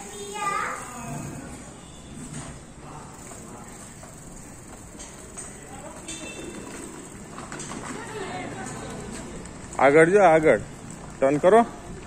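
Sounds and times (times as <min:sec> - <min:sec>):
tricycle wheels rattling on paving: 0:01.4 - 0:12.0.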